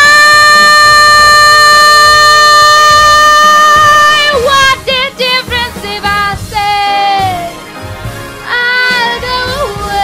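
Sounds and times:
woman singing long high note: 0.0s - 4.7s.

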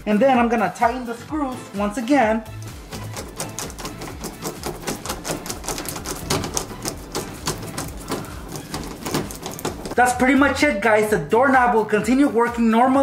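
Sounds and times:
screwdriver clicking: 2.5s - 10.0s.

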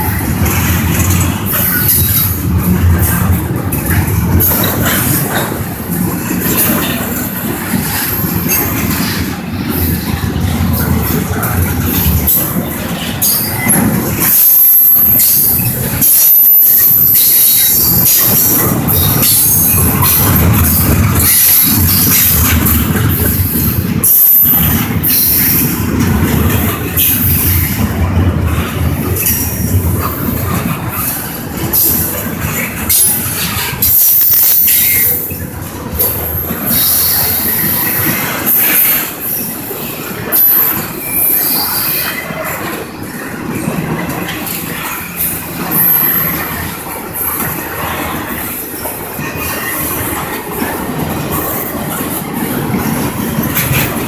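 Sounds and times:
steel wheels rumbling on rail: 0.0s - 54.0s
high-pitched wheel squeal: 13.0s - 22.6s.

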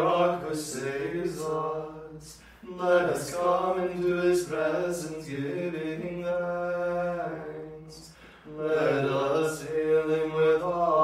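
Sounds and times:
voices singing liturgical chant: 0.0s - 11.0s.

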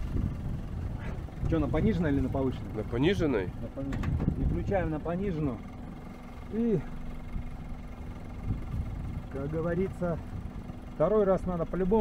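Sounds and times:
quad bike engine running: 0.0s - 12.0s.

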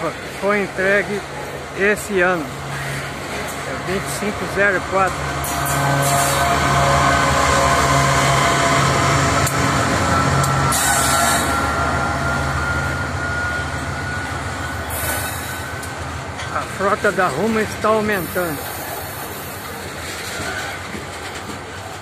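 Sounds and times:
freight cars rolling past: 0.0s - 22.0s
locomotive engine drone: 0.0s - 22.0s.

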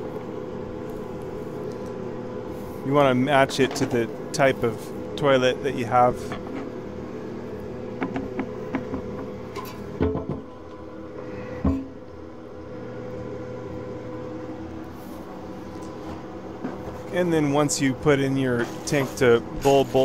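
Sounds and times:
steady background hum: 0.0s - 20.0s
plumbing parts clicking and knocking: 8.0s - 10.5s.

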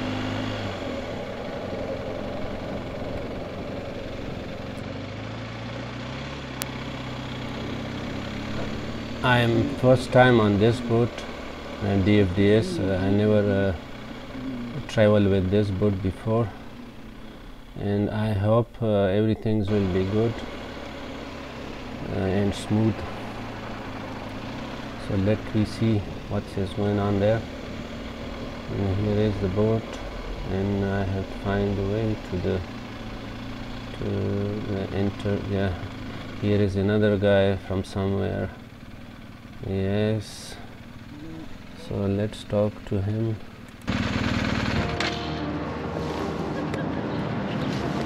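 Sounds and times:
motorcycle engine at low speed: 0.0s - 48.0s
road and air noise: 0.0s - 48.0s.

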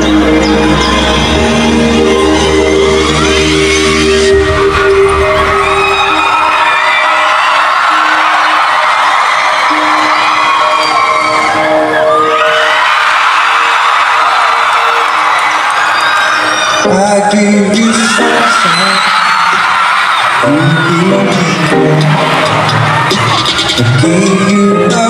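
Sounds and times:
deep bass: 0.0s - 6.2s
held synth chord: 0.0s - 12.7s
crowd cheering and screaming: 0.0s - 25.0s.

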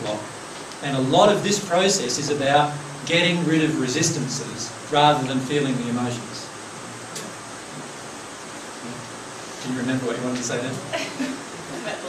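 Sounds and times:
room background hiss: 0.0s - 12.0s.

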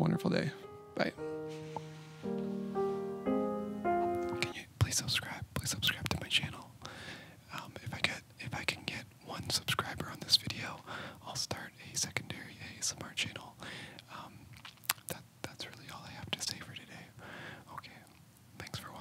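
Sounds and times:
man whispering: 4.4s - 6.8s, 7.4s - 14.4s, 15.1s - 19.0s.

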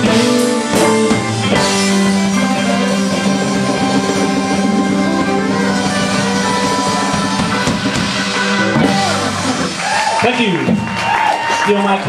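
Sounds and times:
congas: 0.0s - 11.6s
electric guitar: 0.0s - 11.6s
drum kit: 0.0s - 12.0s
live rock band playing: 0.0s - 12.0s.

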